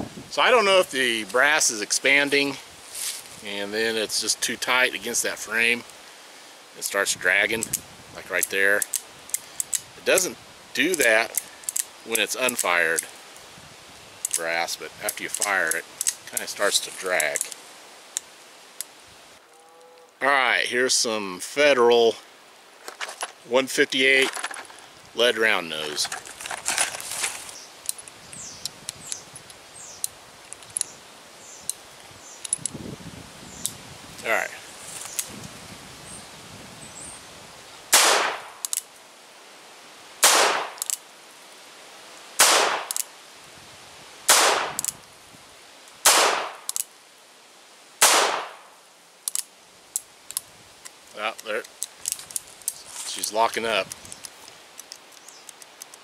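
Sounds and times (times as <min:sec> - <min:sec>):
cartridges loaded into revolver: 0:40.8 - 0:41.0.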